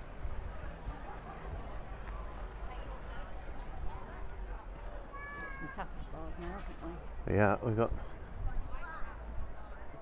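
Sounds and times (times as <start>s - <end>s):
outdoor crowd murmur: 0.0s - 10.0s.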